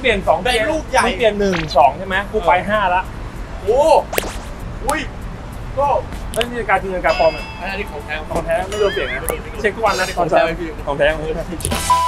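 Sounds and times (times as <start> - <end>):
whip-crack swish effect: 4.1 - 4.6.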